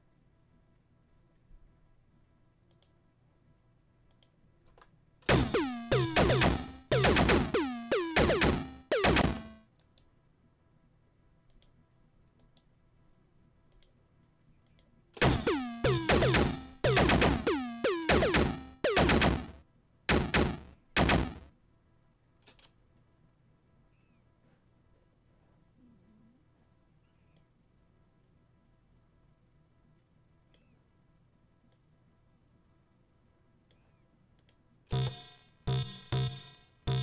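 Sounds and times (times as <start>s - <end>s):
faint clicks: 2.7s - 3.0s, 4.1s - 5.0s, 11.4s - 12.7s, 13.7s - 15.0s, 33.6s - 35.2s
chiptune-like synth hits: 5.3s - 9.6s, 15.2s - 21.5s, 34.9s - 37.0s.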